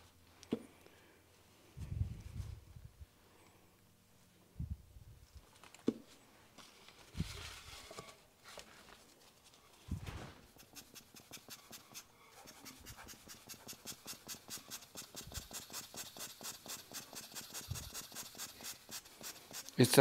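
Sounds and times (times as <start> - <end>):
rubber bulb air blower puffs: 10.5 - 19.8.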